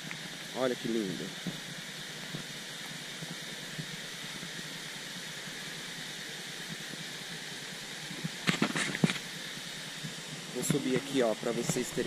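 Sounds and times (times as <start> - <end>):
waterfall rushing into pool: 0.0 - 12.0.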